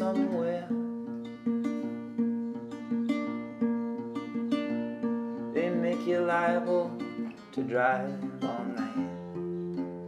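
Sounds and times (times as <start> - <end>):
person singing: 0.0 - 1.2, 4.3 - 10.0
fingerpicked acoustic guitar: 0.0 - 10.0.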